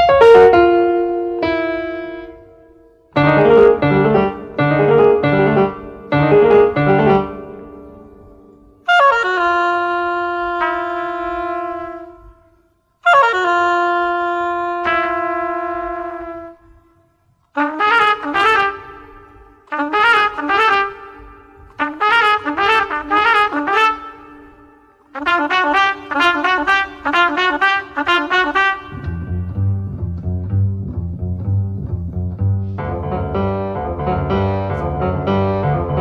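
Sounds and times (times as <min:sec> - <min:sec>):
jazzy trumpet melody: 0:00.0 - 0:31.2, 0:32.7 - 0:36.0.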